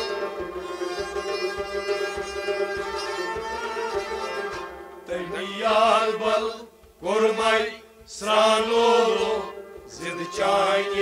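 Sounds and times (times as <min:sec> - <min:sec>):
man singing chant-like: 0:05.1 - 0:11.0.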